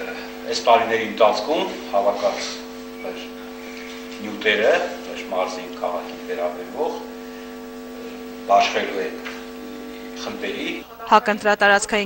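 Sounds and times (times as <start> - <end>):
electrical mains hum: 0.0 - 12.0
snatches of speech: 2.0 - 2.6.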